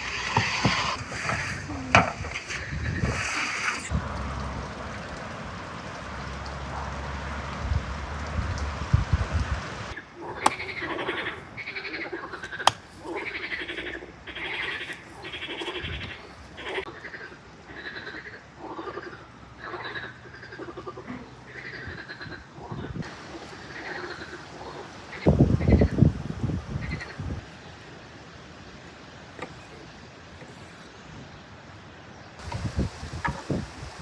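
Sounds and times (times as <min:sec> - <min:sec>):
frogs croaking: 0:09.9 - 0:27.8.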